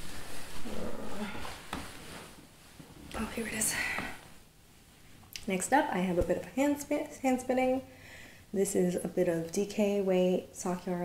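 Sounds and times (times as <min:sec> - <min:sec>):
woman humming or muttering: 0:00.6 - 0:01.6.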